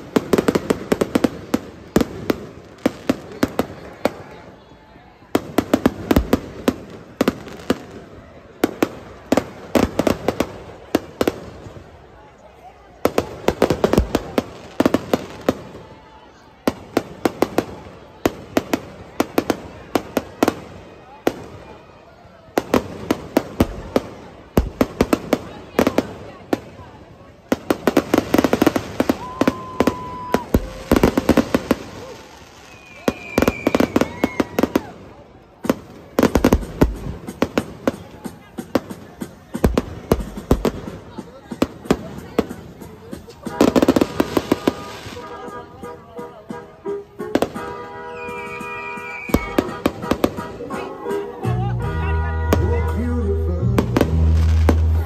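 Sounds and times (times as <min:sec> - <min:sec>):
fireworks cracks and bangs: 0:00.0 - 0:04.5, 0:05.3 - 0:12.0, 0:13.0 - 0:45.5, 0:47.3 - 0:51.0, 0:52.4 - 0:55.0.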